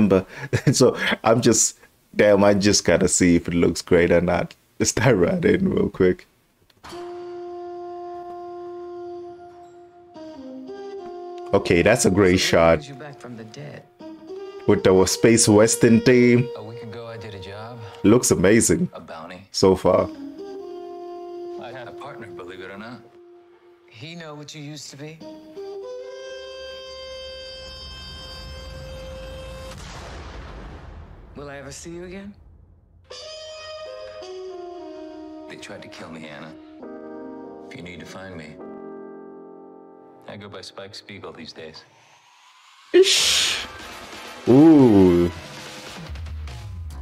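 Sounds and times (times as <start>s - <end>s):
wind instrument long note: 20.1s - 24.0s, 25.6s - 29.8s, 33.1s - 35.9s, 43.0s - 43.8s, 44.4s - 45.5s
sudden hit with noisy wash: 29.6s - 31.4s.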